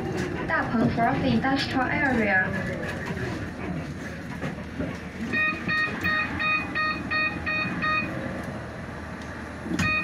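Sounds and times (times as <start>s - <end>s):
bus engine rumbling: 0.0s - 10.0s
short electronic beeps: 5.3s - 8.1s, 9.8s - 10.0s.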